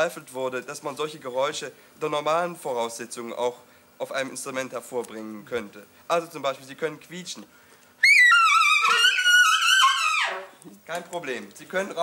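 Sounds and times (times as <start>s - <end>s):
saxophone high squeal: 8.0s - 10.6s.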